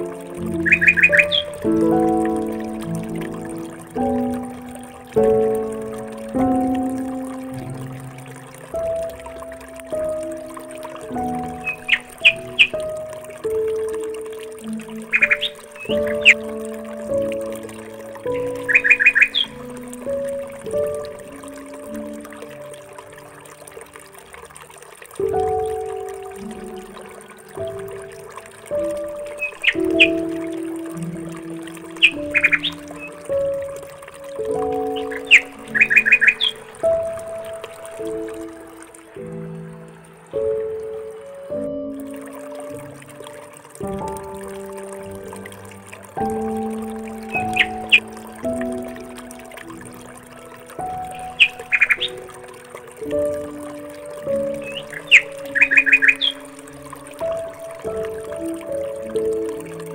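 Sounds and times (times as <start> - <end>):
high bird chirps: 0.5 - 1.6, 11.6 - 12.8, 15.1 - 16.4, 18.3 - 19.6, 29.3 - 30.2, 32.0 - 33.2, 34.8 - 36.7, 47.3 - 48.1, 51.1 - 52.3, 54.6 - 56.5.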